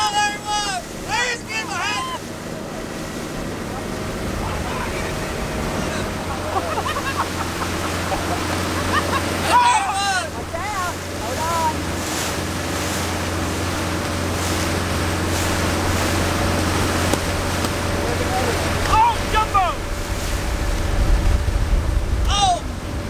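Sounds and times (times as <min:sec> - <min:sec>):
people shouting: 0:00.0 - 0:02.3, 0:09.1 - 0:10.8
outboard motor running: 0:00.0 - 0:23.0
water rushing in wake: 0:00.0 - 0:23.0
wind buffeting microphone: 0:10.2 - 0:23.0.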